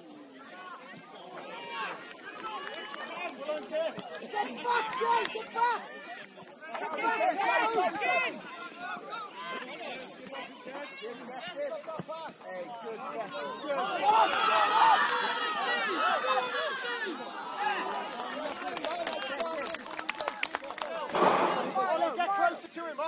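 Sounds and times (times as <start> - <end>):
people shouting: 13.2 - 18.0.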